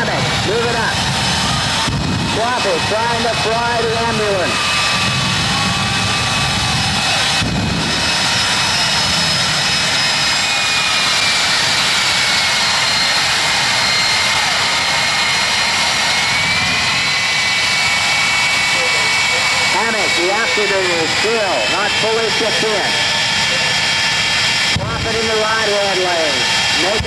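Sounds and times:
jet turbine engine roar: 0.0 - 27.0.

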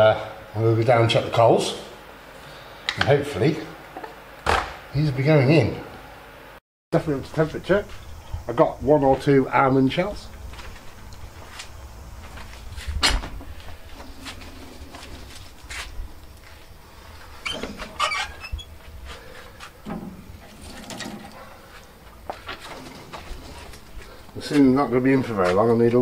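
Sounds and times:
wind rumble on microphone: 7.9 - 9.2, 12.1 - 16.3.

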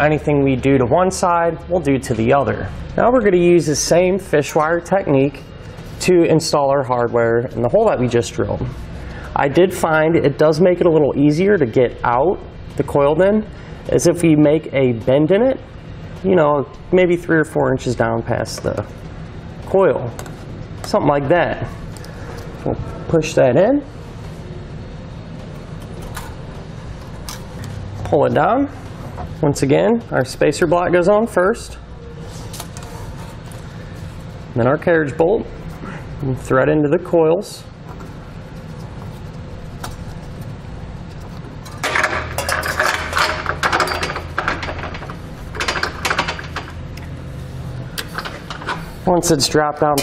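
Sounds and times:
steady low hum: 0.0 - 50.0
wire clicking and scraping in metal: 25.8 - 28.2, 38.6 - 47.1.

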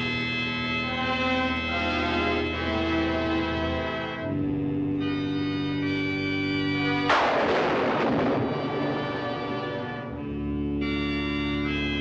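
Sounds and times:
sustained organ chord: 0.0 - 12.0
thunderclap crash: 7.1 - 9.3.

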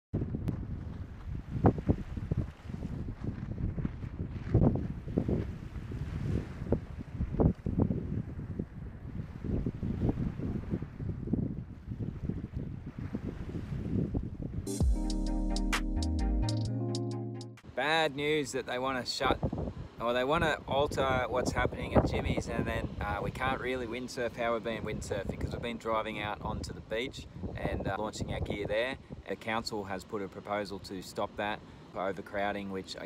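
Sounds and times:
wind buffeting microphone: 0.2 - 14.7, 19.2 - 29.6
music jingle: 14.7 - 17.7.

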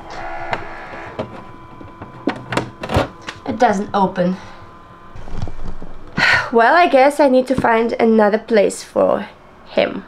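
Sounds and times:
drying fan humming: 0.0 - 10.0.

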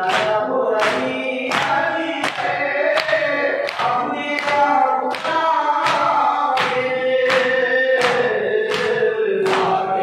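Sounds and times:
hands beating chests: 0.0 - 9.8
men chanting in unison: 0.0 - 10.0.

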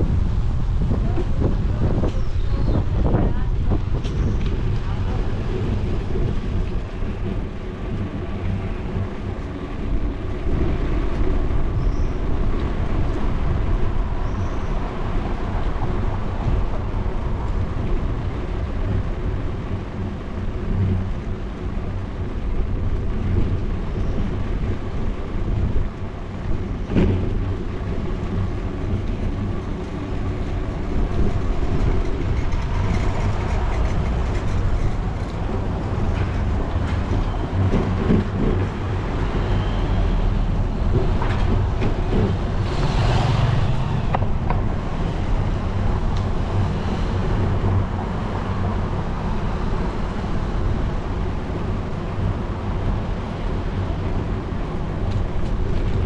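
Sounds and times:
bicycle tyre and frame vibration: 0.0 - 56.0
wind on microphone: 0.0 - 56.0.

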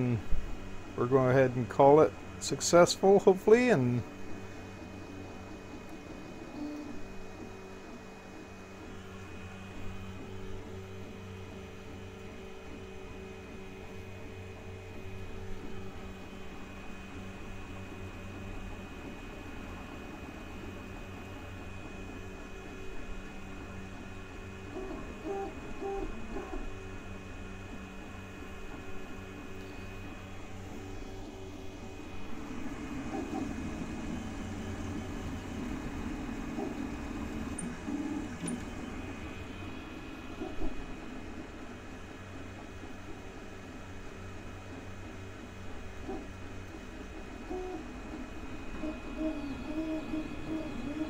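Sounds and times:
stepper motor tones: 0.0 - 41.7, 46.1 - 51.0
printer fans and motors humming: 0.0 - 51.0.

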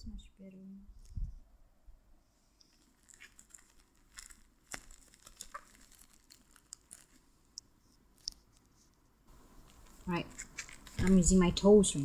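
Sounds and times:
plastic wrapping crinkling and tearing: 2.6 - 7.3, 9.6 - 11.4.

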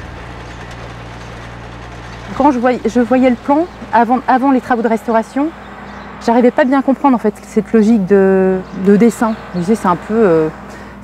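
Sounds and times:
tractor engine running: 0.0 - 11.0.

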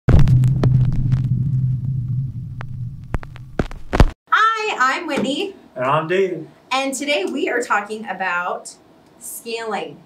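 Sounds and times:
crackles and clicks: 0.1 - 4.2
glitch clicking noise: 0.1 - 4.2.

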